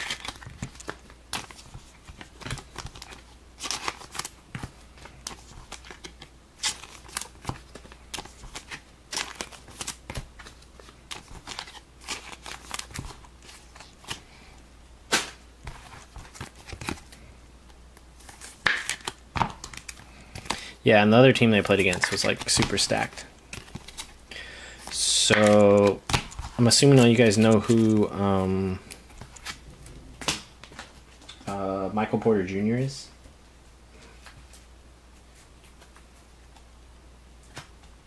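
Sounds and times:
cards rustling in plastic sleeves: 0.0s - 31.6s.

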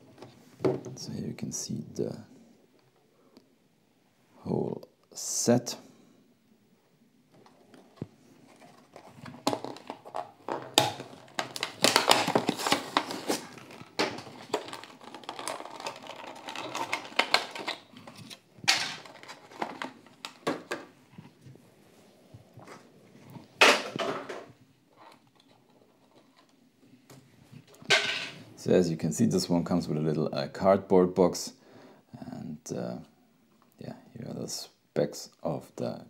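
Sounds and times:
plastic packaging crinkling: 8.5s - 20.9s.

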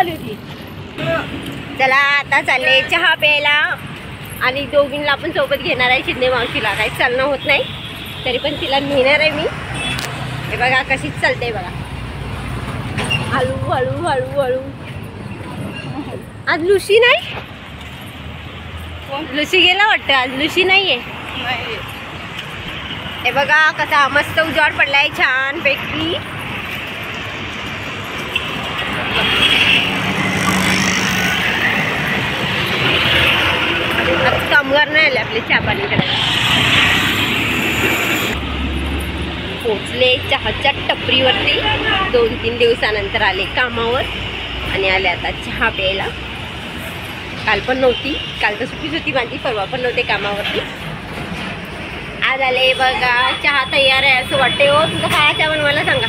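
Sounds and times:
woman talking: 0.0s - 0.5s, 1.8s - 3.8s, 4.4s - 9.6s, 10.5s - 11.8s, 13.3s - 14.8s, 15.8s - 17.4s, 19.1s - 21.9s, 23.2s - 26.3s, 34.0s - 36.2s, 39.6s - 46.2s, 47.4s - 50.7s, 52.2s - 56.0s
traffic engines rumbling: 0.0s - 56.0s.

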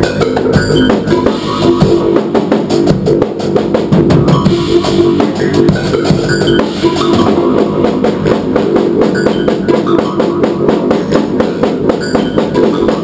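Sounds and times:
drum kit rapid beat: 0.0s - 13.0s
low synthesizer tones: 0.0s - 13.0s.

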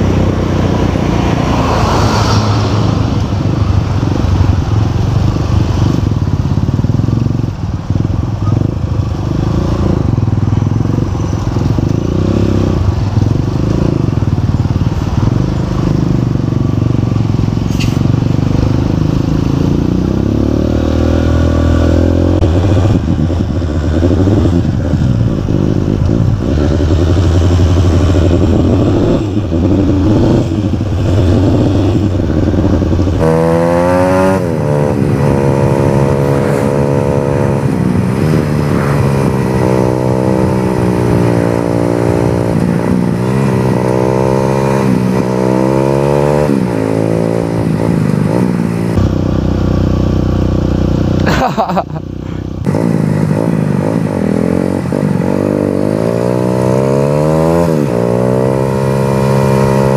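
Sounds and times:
motorcycle engine accelerating: 0.0s - 59.9s.

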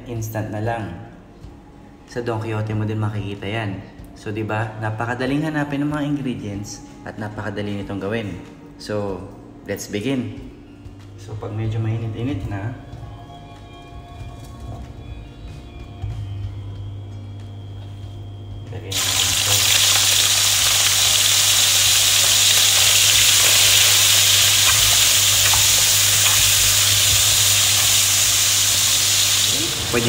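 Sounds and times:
faint music: 0.0s - 30.0s
bacon sizzling in oil: 18.9s - 30.0s.

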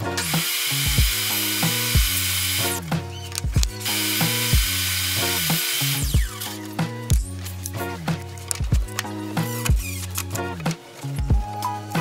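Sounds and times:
music with steady beat: 0.0s - 12.0s
table saw motor running: 0.2s - 2.8s, 3.8s - 6.4s.

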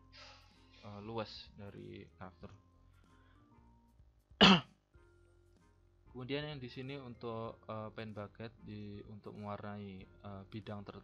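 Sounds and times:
faint background music: 0.0s - 11.0s
man clearing his throat: 4.4s - 4.7s.

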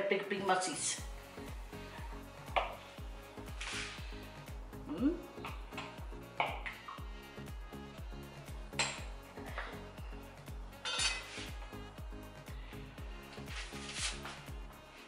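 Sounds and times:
background music with steady beat: 0.0s - 15.0s.

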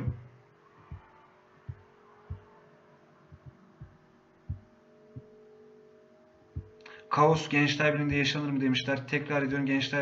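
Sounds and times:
soft low thumps: 0.0s - 2.6s, 3.3s - 5.3s, 6.6s - 6.8s
faint steady hum: 0.0s - 10.0s.

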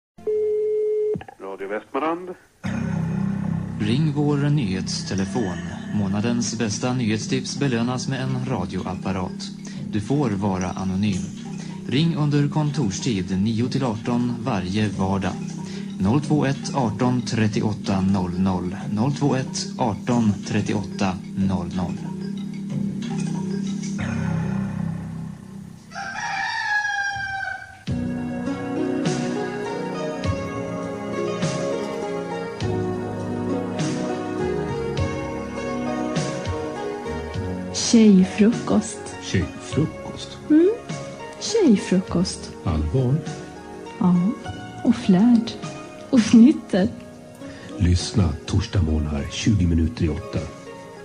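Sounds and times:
telephone dial tone: 0.3s - 1.4s
rooster crowing: 25.8s - 27.9s.

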